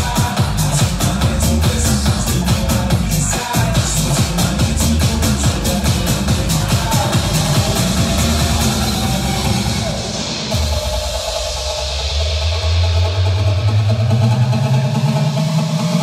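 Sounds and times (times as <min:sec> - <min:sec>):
club dance music: 0:00.0 - 0:16.0
deep bass tone sliding upward: 0:00.5 - 0:16.0.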